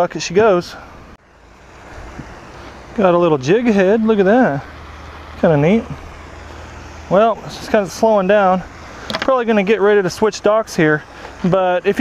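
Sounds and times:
wind buffeting microphone: 0.3s - 9.8s.

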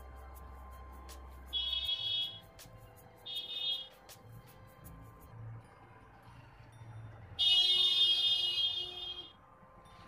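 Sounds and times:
buzzing horn-like tone: 7.4s - 9.4s.

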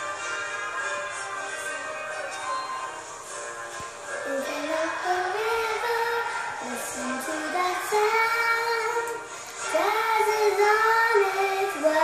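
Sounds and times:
girl singing: 4.2s - 12.0s.

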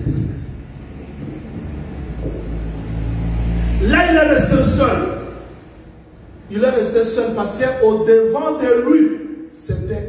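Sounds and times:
low steady rumble: 0.0s - 8.0s.

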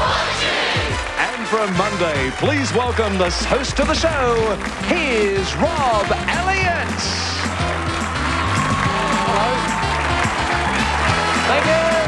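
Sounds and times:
game show theme music: 0.0s - 12.0s
studio audience applauding: 0.0s - 12.0s.

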